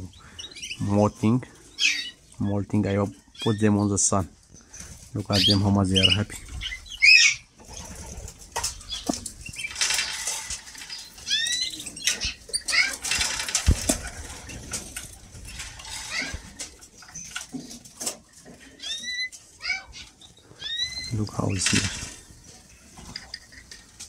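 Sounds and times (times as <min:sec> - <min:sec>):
bird chirps: 0:00.0 - 0:01.0, 0:01.7 - 0:02.6, 0:04.6 - 0:08.0, 0:08.8 - 0:09.8, 0:10.8 - 0:13.0, 0:18.8 - 0:21.9
birds fluttering in cages: 0:00.0 - 0:24.0
small clicks and rustles: 0:07.6 - 0:20.3, 0:21.5 - 0:24.0.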